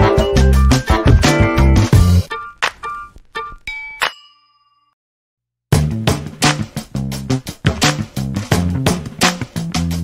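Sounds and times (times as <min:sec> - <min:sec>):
music: 0:00.0 - 0:03.6, 0:05.7 - 0:10.0
bright metallic ding: 0:03.7 - 0:04.9.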